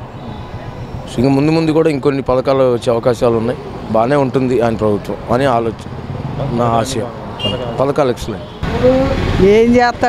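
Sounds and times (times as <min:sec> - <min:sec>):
street background noise: 0:00.0 - 0:10.0
people talking: 0:06.4 - 0:10.0.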